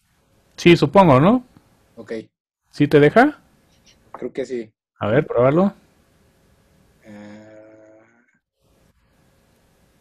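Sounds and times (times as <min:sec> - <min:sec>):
man humming: 0:07.0 - 0:08.4.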